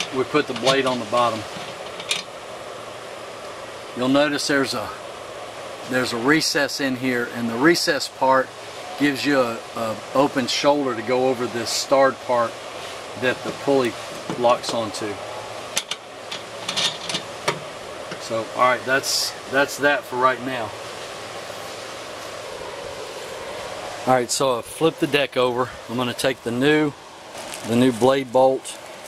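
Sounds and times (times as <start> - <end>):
background hiss: 0.0 - 29.0
metal scrape: 16.6 - 17.3.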